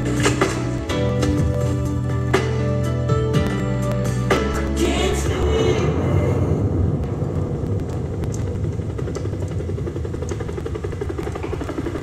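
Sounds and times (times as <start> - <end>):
low rumble with flutter: 0.0 - 12.0.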